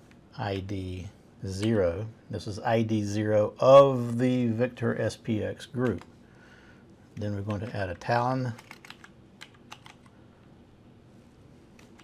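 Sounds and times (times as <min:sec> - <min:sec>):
keyboard typing: 0:07.2 - 0:10.1, 0:11.8 - 0:12.0.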